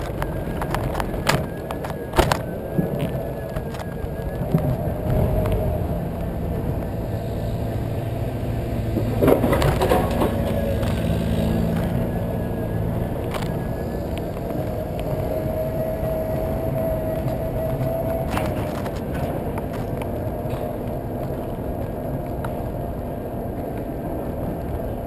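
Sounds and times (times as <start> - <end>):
electric motor whine: 0.0 - 20.0
tyre and road rumble: 0.0 - 25.0
knocks and rattling: 8.8 - 12.2.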